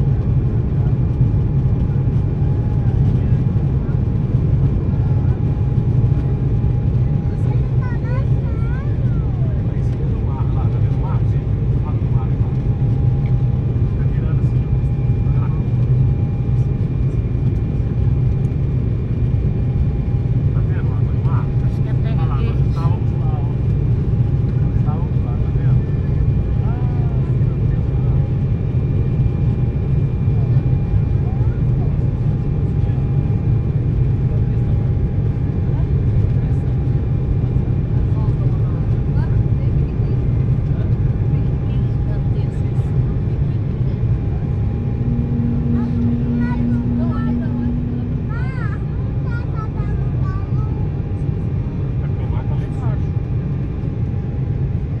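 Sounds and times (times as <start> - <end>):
jet engines roaring: 0.0 - 55.0
thin engine tones: 40.8 - 53.6
airflow: 42.6 - 51.7.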